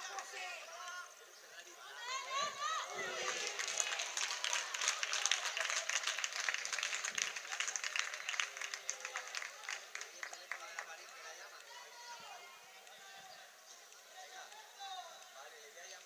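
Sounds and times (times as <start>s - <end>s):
crowd clapping: 3.0s - 11.8s.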